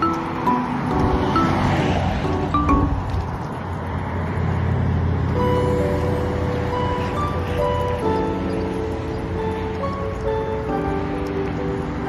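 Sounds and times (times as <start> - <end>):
road traffic rumble: 0.0 - 12.0
background music: 5.4 - 12.0.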